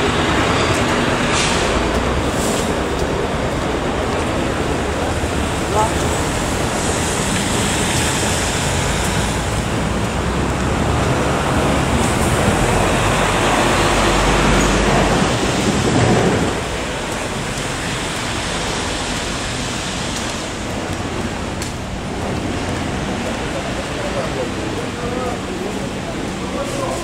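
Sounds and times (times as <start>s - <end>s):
traffic on wet road: 0.0s - 27.0s.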